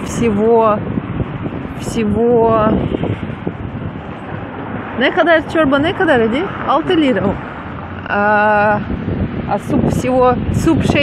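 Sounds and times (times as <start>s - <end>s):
road noise: 0.0s - 11.0s
wind rushing over microphone: 0.0s - 11.0s.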